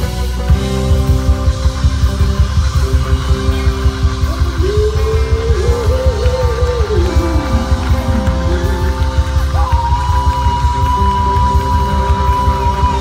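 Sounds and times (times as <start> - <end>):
rock band playing loudly: 0.0 - 13.0.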